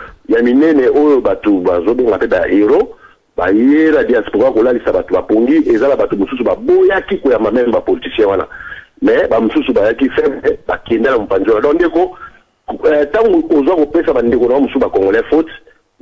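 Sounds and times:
person speaking over a telephone: 0.0 - 15.7.

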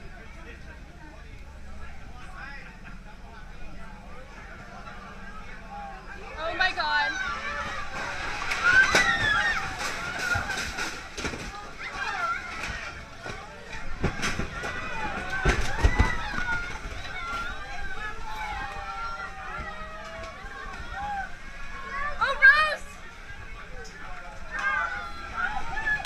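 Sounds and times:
waves sloshing: 0.0 - 26.0
people shouting in alarm: 6.9 - 10.7, 14.4 - 23.0.

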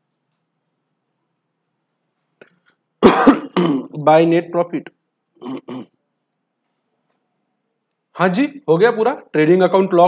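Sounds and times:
man clearing his throat: 3.0 - 4.0, 5.4 - 6.0
man speaking: 3.6 - 5.8, 8.2 - 10.0.

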